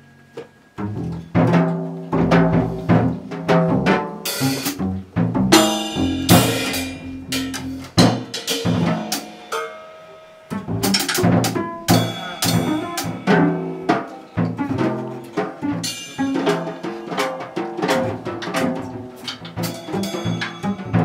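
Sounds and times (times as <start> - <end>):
plucked double bass: 0.8 - 9.1, 10.5 - 21.0
drum and cymbal hits: 0.9 - 21.0.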